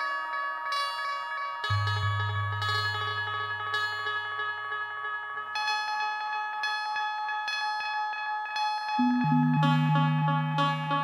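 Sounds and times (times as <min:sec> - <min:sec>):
synthesizer bell-like tones with delay: 0:09.0 - 0:11.0.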